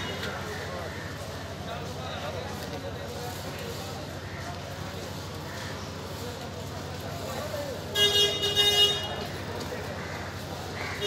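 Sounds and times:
street noise: 0.0 - 11.0
vehicle horn honking: 7.9 - 9.3.

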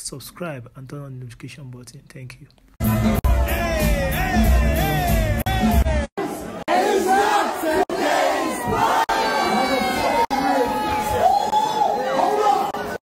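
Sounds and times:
party crowd shouting and cheering: 2.8 - 13.0.

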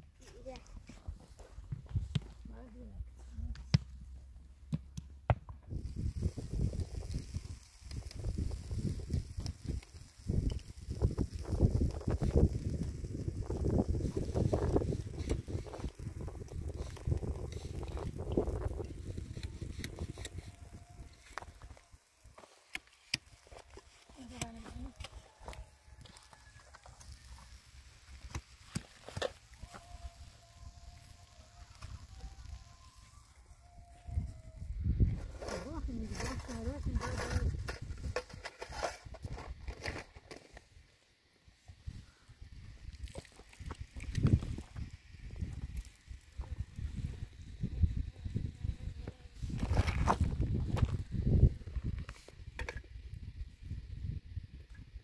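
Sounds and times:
wind rumbling on microphone: 5.6 - 22.0, 29.6 - 40.1, 41.8 - 55.0.

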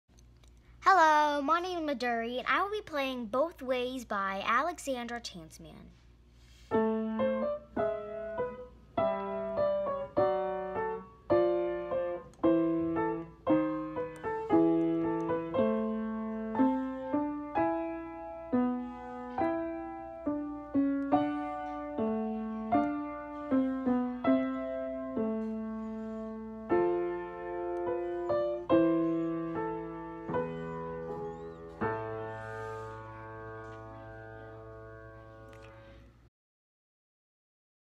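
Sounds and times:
solo piano melody: 6.8 - 36.0.

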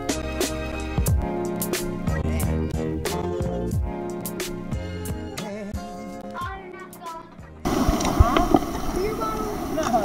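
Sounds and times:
background music: 0.0 - 8.2
surf and water washing: 7.6 - 10.0
voices: 8.1 - 10.0.

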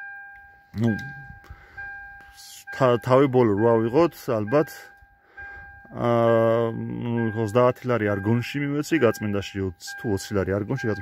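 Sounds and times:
car warning chime ding: 0.0 - 11.0.

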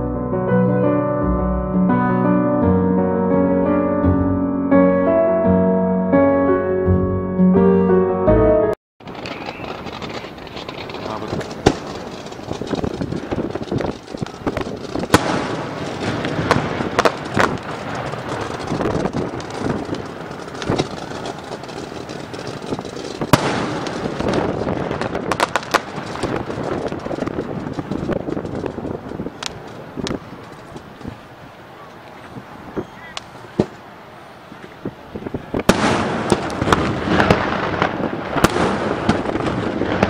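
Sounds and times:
fireworks sharp bangs: 9.0 - 31.4, 35.2 - 40.0
fireworks hissing crackle: 9.0 - 40.0.

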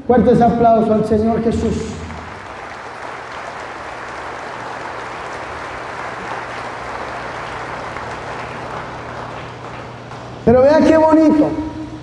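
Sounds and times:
crowd clapping: 1.6 - 10.5.

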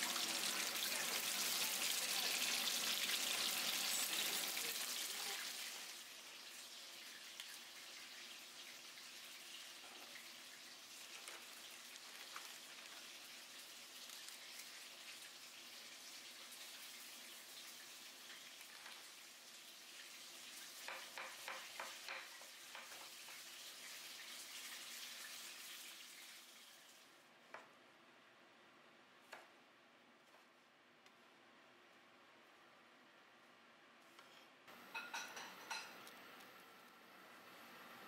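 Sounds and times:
faint steady hiss: 0.0 - 38.0.

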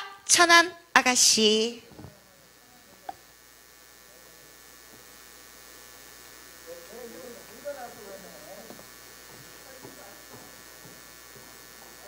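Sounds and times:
low hiss and hum: 0.0 - 12.0.

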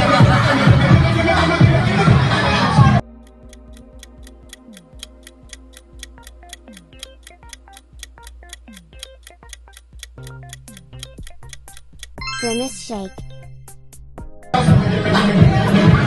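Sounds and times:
timer clock ticking: 3.0 - 14.3
soft background music: 3.0 - 16.0.

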